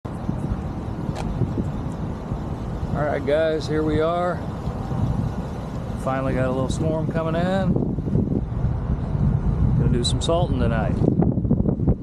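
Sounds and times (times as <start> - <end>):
wind on microphone: 0.1 - 12.0.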